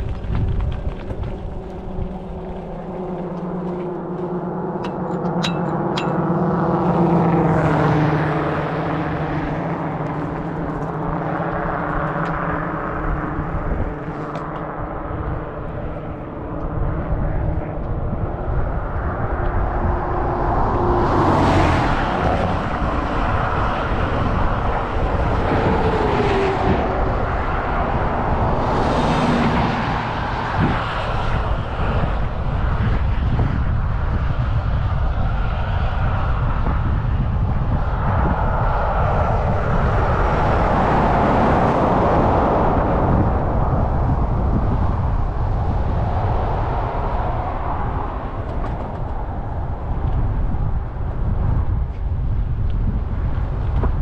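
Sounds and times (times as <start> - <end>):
vehicles passing: 0.0 - 54.0
wind noise: 0.0 - 54.0.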